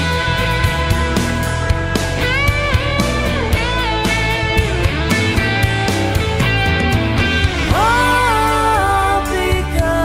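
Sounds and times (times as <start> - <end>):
lead guitar bending notes: 0.0 - 9.4
bass: 0.0 - 10.0
steady drum beat: 0.0 - 10.0.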